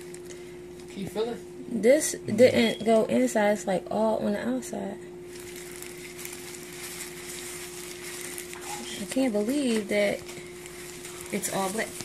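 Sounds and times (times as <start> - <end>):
plastic gloves and paper rustling: 0.0 - 1.2, 5.2 - 12.0
steady low hum: 0.0 - 12.0.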